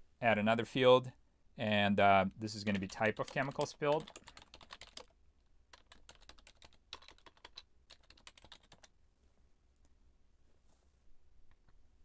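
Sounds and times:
faint typing on keyboard: 2.5 - 9.0.

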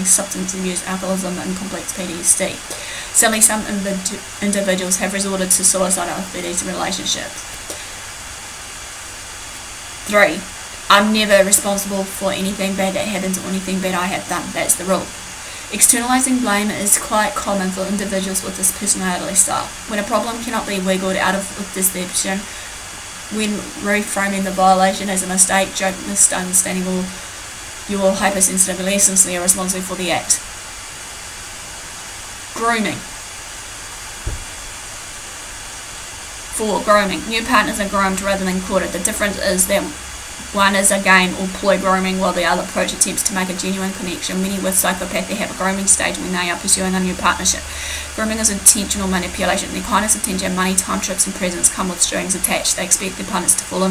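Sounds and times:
steady hiss: 0.0 - 53.9
brief low thump: 34.2 - 34.6.

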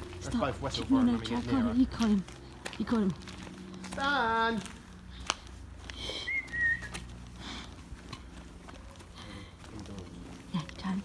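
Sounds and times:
faint outdoor background: 0.0 - 11.0
person whistling: 6.2 - 7.0.

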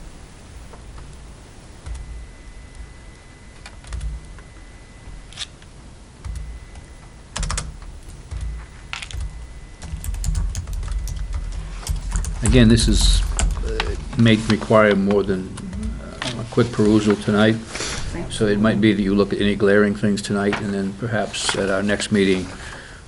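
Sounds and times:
low thumps and rumble: 0.0 - 5.2, 6.2 - 14.2
faint steady high tone: 0.0 - 14.0
laptop keyboard typing: 3.6 - 4.6, 5.3 - 17.1.

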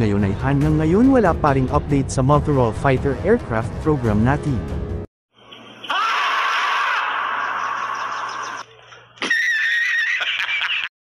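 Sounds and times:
person screaming: 5.9 - 8.4.

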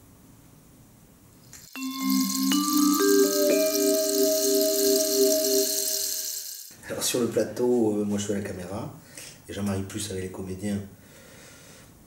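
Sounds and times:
high hiss: 1.5 - 6.8
bell-like mallet percussion notes: 1.7 - 6.7.

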